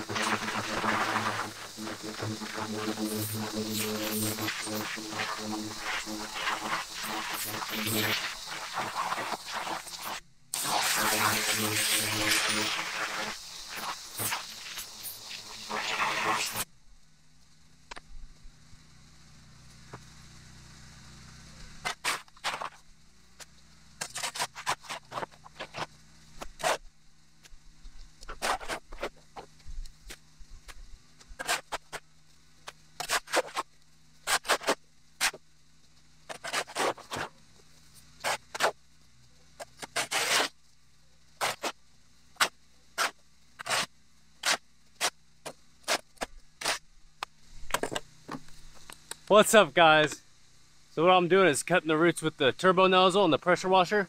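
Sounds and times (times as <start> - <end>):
shovel scraping on concrete: 0.0 - 13.0, 21.8 - 22.8, 24.0 - 26.8, 28.3 - 29.2, 31.4 - 32.0, 33.0 - 33.6, 34.3 - 35.4, 36.3 - 37.3, 38.2 - 38.8, 39.7 - 40.5, 41.4 - 41.8, 42.4 - 45.1, 45.8 - 46.8
loud rushing spray: 0.0 - 16.7.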